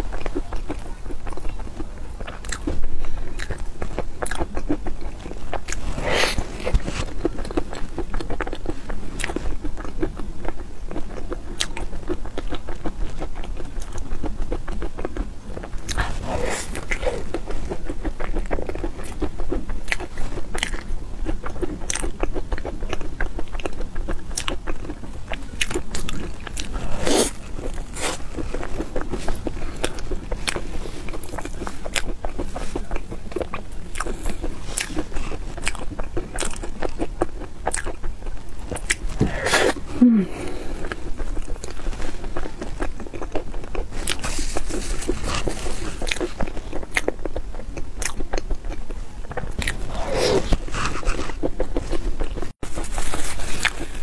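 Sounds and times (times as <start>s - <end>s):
close chewing and crunching: 0.0s - 54.0s.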